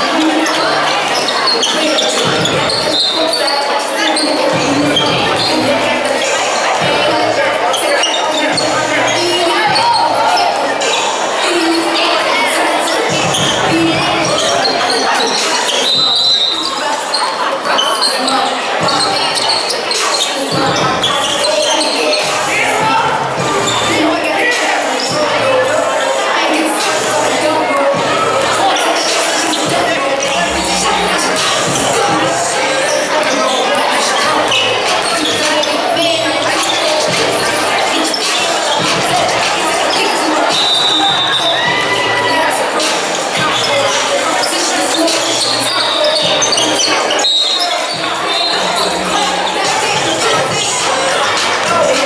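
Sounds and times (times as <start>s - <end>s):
many voices of players and crowd: 0.0s - 52.0s.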